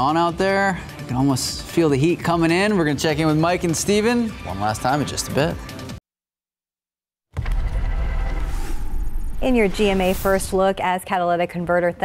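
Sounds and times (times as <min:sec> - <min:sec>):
voice-over: 0:09.4 - 0:11.4.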